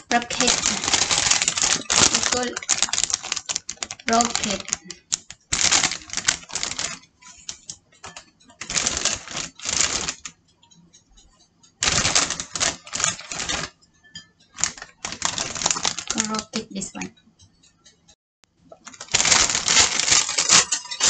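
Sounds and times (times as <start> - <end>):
plastic bag crackling rustle: 0.0 - 10.3, 11.8 - 13.7, 14.6 - 17.0, 18.8 - 21.0.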